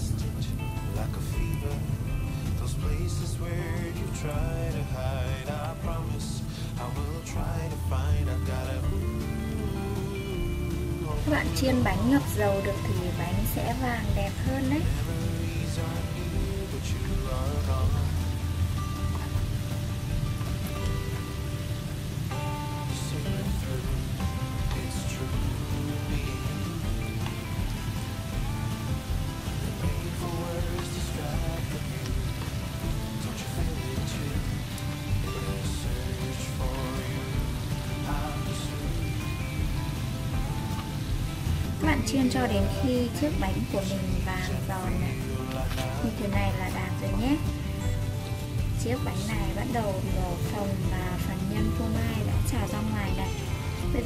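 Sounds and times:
background music with light melody: 0.0s - 54.0s
hot oil sizzling: 0.0s - 54.0s.

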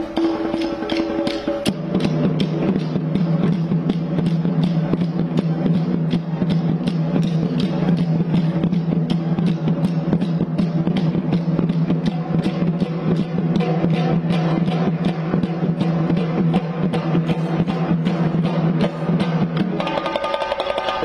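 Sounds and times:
barrel drums beaten with sticks: 0.0s - 21.0s.

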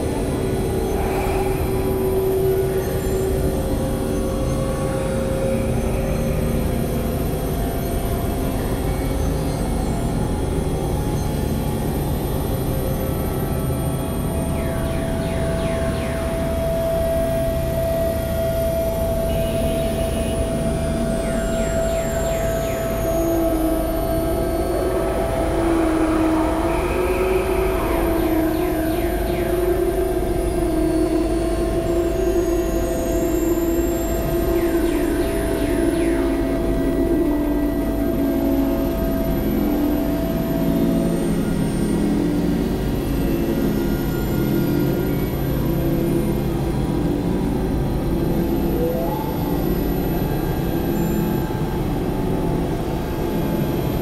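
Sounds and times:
lower wavering tone: 0.0s - 54.0s
curving sweeps: 24.0s - 28.9s
low rumble: 24.0s - 29.0s.

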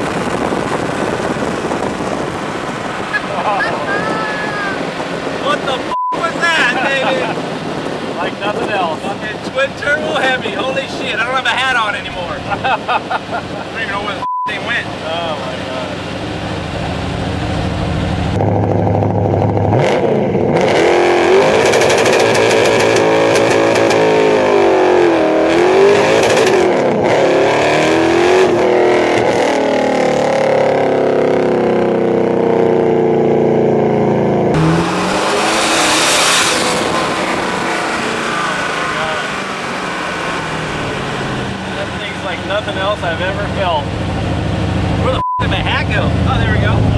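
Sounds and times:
car engine revving: 0.0s - 46.9s.

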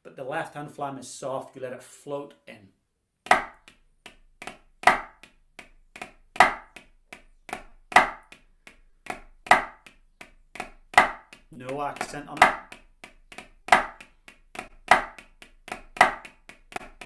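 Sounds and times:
drumsticks on a practice pad: 3.3s - 17.0s.

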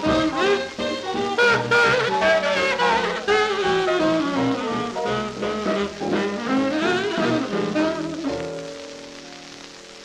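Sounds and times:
swing jazz from old record: 0.0s - 10.0s.

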